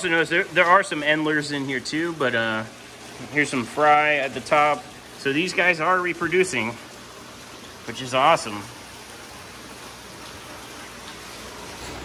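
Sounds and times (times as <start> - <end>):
running aquarium water: 0.0 - 12.0.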